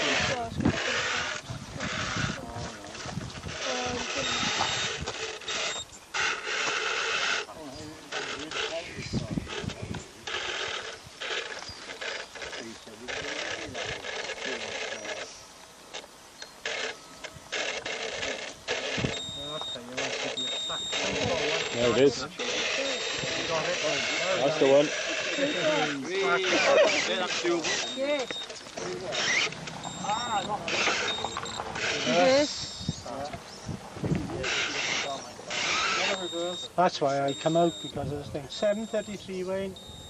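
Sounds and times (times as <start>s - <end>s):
toy crawler knocking and scraping: 0.0s - 7.5s, 27.3s - 32.1s
voices talking: 0.0s - 40.0s.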